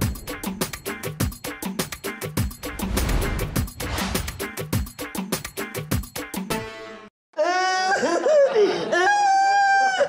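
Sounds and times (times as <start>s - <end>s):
man laughing heartily: 7.4s - 10.0s.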